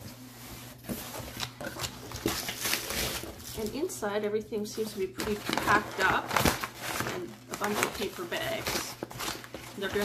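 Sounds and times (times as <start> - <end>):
cardboard box rustling and scraping: 0.0 - 3.7.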